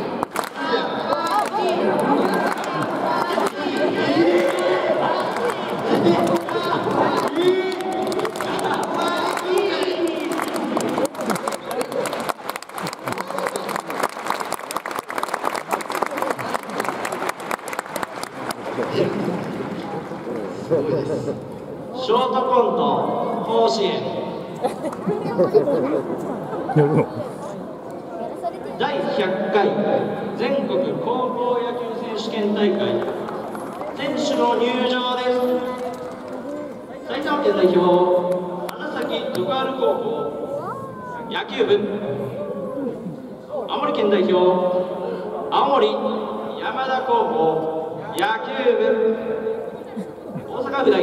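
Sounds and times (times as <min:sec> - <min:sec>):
crowd chatter: 0:00.0 - 0:51.0
talk over loudspeakers: 0:00.0 - 0:51.0.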